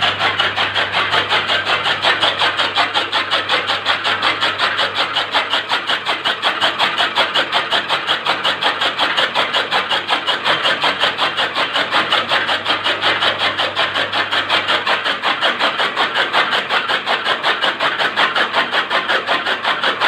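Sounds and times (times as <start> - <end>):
fodder cutter chopping: 0.0 - 20.0.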